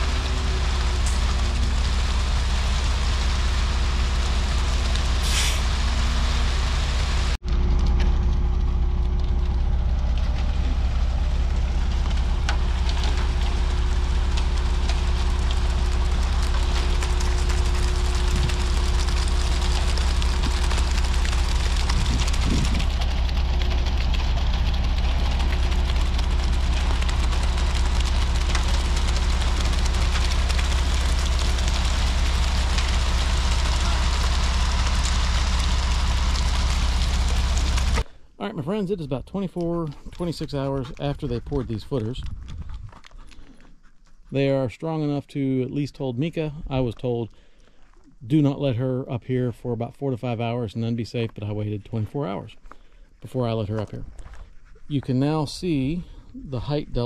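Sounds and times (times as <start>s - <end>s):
diesel engine under load: 0.0s - 42.7s
mixer drum turning: 7.4s - 38.1s.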